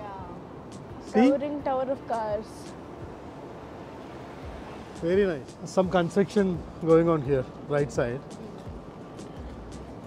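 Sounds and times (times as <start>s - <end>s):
city street ambience: 0.0s - 10.0s.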